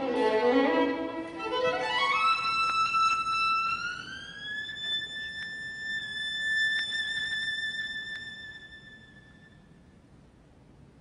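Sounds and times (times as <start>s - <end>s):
solo violin sliding notes: 0.0s - 9.7s.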